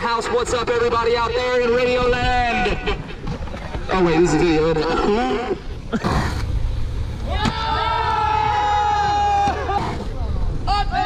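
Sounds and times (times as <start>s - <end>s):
people yelling and cheering: 7.2s - 11.0s.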